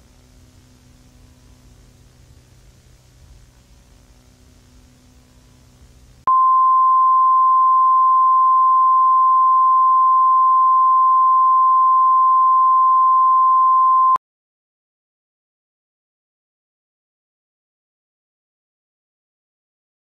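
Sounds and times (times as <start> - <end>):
faint hiss and hum: 0.0 - 6.3
high-pitched pure tone: 6.3 - 14.2.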